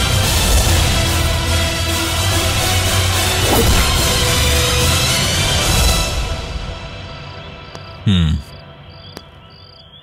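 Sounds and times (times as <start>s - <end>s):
crickets chirping: 7.2s - 10.0s
man's low vocal sound: 8.0s - 8.5s.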